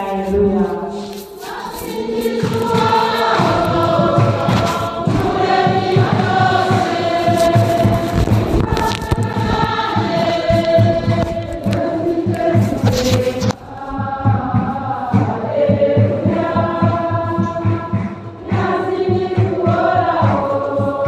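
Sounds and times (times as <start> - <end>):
choir singing: 0.0 - 21.0
steady low beat: 1.2 - 21.0.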